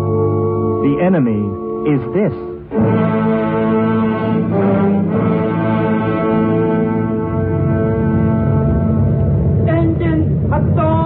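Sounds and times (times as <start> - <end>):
brass orchestra sustained chord: 0.0 - 10.8.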